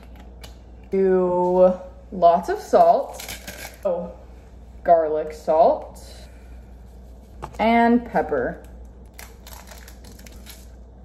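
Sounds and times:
pepper grinder crunching: 8.6s - 10.8s.

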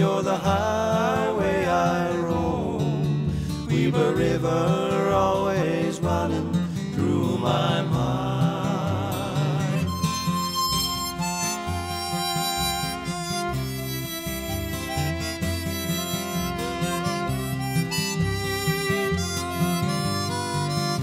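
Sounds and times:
acoustic guitar: 0.0s - 21.0s
bass line: 7.2s - 21.0s
free-reed instrument melody: 7.4s - 21.0s.

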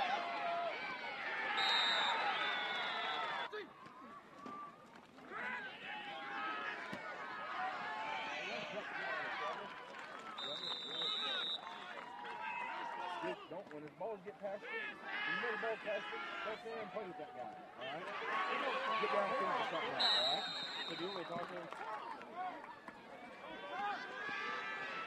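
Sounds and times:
crowd shouting and cheering: 0.0s - 13.6s, 14.2s - 25.0s.

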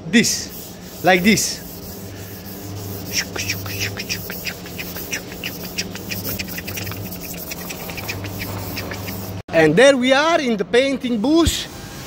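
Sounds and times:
steady low hum: 0.0s - 9.4s
sanding pad rasping on plastic: 0.3s - 9.4s.

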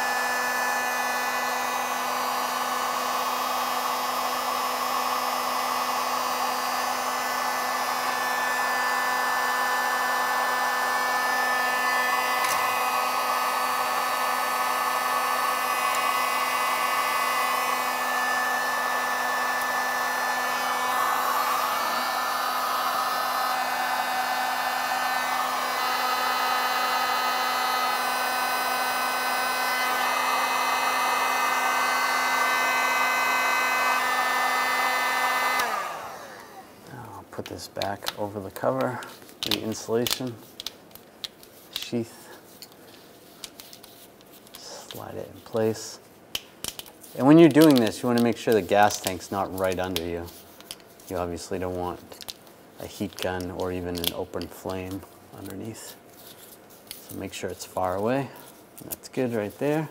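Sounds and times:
heat gun switched off: 0.0s - 36.8s
heat gun fan blowing air: 0.0s - 59.9s.

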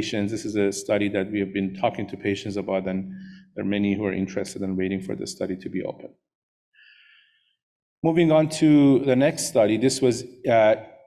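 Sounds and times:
faint short breath: 3.1s - 3.6s, 6.8s - 7.6s.

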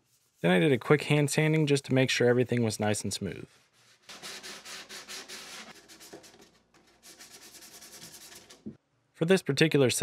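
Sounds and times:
sanding sponge rubbing wood: 3.5s - 8.6s.

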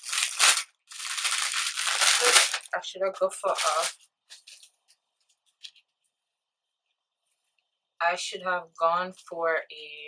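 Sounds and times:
plastic packaging rustling: 0.0s - 6.0s.

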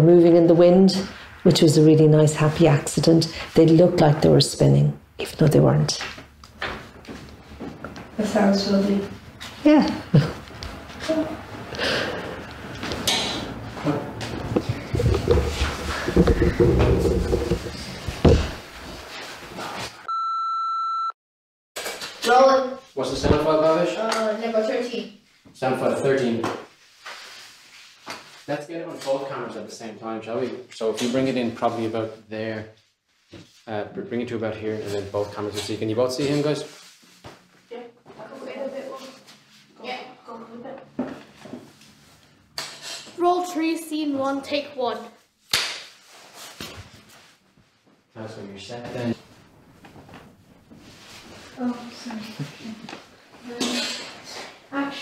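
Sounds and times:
room noise: 0.0s - 20.1s, 21.8s - 55.0s
knock: 14.6s - 18.6s
steady high test tone beep: 20.1s - 21.2s.

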